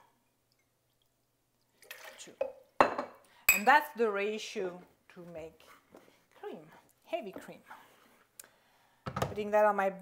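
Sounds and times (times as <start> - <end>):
glass cup clinking on counter: 2.4 - 3.7.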